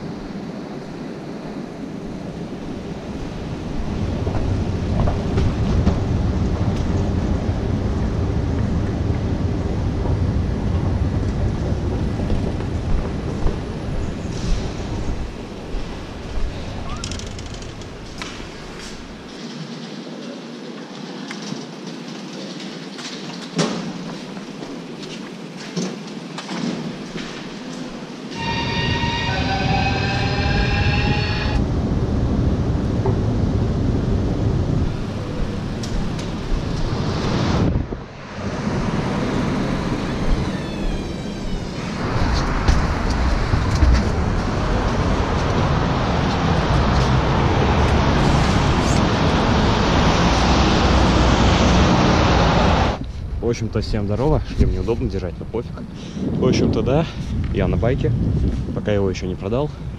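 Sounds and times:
railway station ambience: 0.0 - 57.6
low rumbling: 1.5 - 19.3, 27.2 - 59.9.

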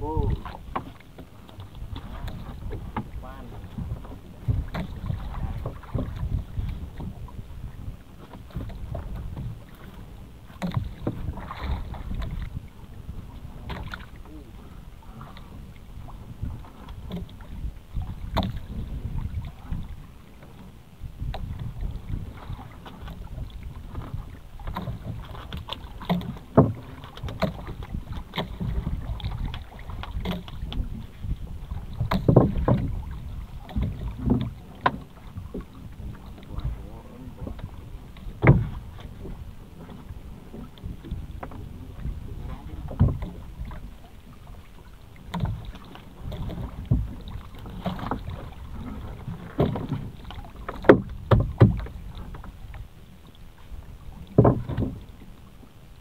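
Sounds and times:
wind rumble on microphone: 0.0 - 56.0.

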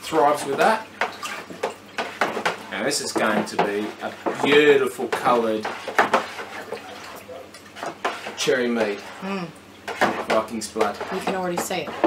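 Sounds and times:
utensil knocking plastic bucket: 0.4 - 6.4, 10.0 - 12.0.

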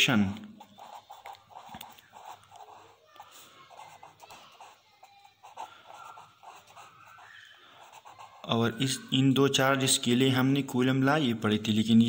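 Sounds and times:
marker pen writing on paper: 0.0 - 9.1.

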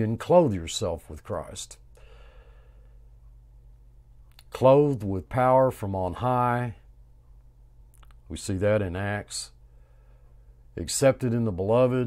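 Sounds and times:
steady low hum: 0.0 - 12.0
man breathing softly: 1.9 - 3.2, 9.6 - 10.7.

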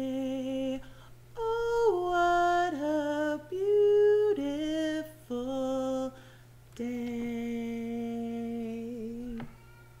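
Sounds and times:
woman singing a long note: 6.8 - 9.6.

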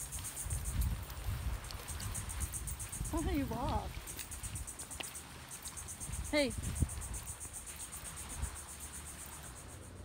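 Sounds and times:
insects chirping: 0.0 - 10.0.

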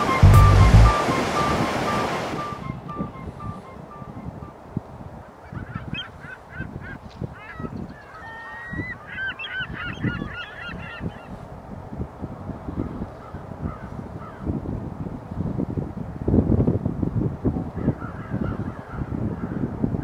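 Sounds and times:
geese honking: 0.0 - 4.4
surf washing: 0.0 - 5.5.

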